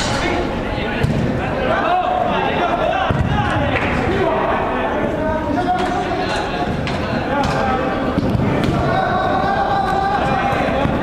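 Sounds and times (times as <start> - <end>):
players' voices echoing: 0.0 - 11.0.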